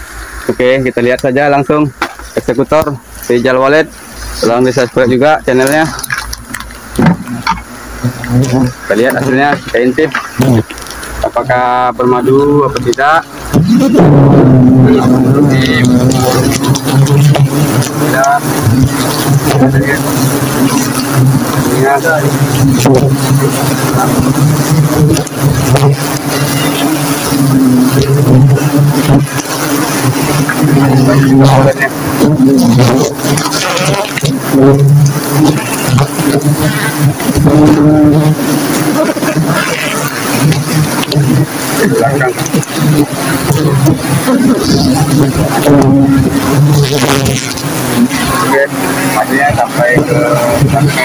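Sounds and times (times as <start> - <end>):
bees buzzing in a low drone: 0.0 - 51.0
branches and leaves rustling: 0.9 - 14.0.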